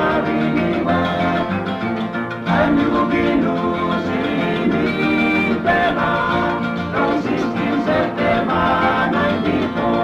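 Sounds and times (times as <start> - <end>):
acoustic guitars playing: 0.0 - 10.0.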